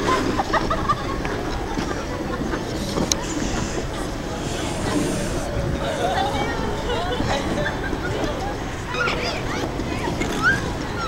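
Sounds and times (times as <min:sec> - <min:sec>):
faint voices of skaters: 0:00.0 - 0:11.0.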